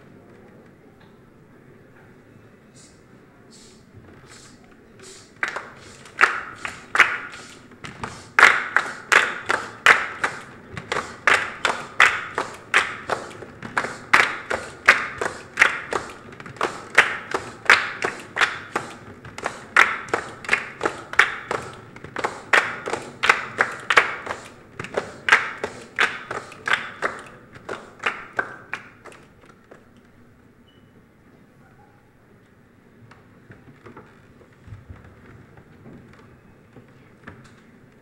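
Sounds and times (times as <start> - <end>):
children clapping rhythmically: 5.3 - 29.4.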